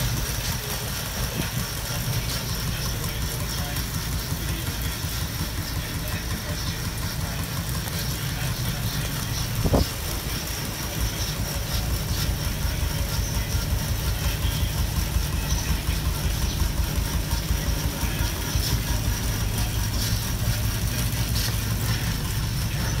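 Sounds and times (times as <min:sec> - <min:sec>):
bicycle spinning on rollers: 0:00.0 - 0:23.0.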